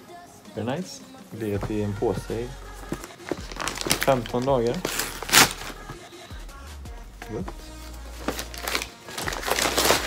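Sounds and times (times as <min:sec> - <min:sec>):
paper packaging rustling: 0:01.4 - 0:06.0, 0:08.1 - 0:10.0.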